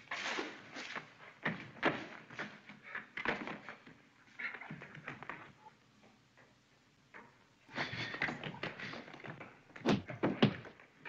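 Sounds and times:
noisy scuffle: 0.0s - 5.8s.

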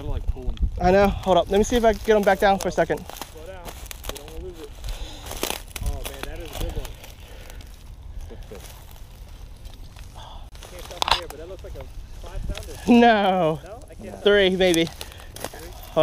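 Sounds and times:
dry reeds rustling and crackling: 0.0s - 16.0s
low wind rumble: 0.0s - 16.0s.

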